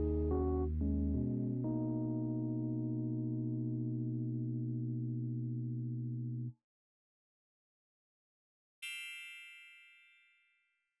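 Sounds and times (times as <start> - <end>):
bright bell-like chime: 8.8 - 11.0.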